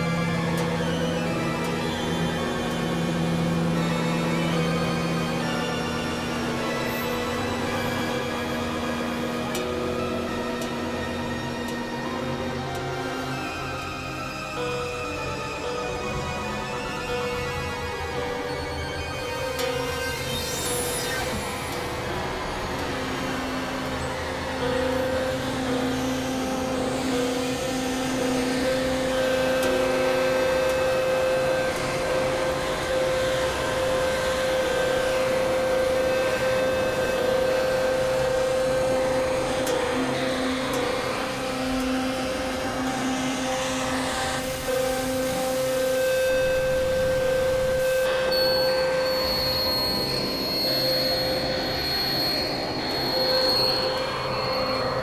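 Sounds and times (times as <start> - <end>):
steady held drone tones: 0.0 - 55.0
high whistling tone: 46.3 - 55.0.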